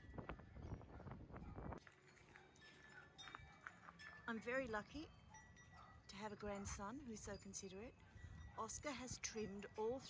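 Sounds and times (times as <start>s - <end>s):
wind buffeting microphone: 0.0s - 1.8s, 6.4s - 10.0s.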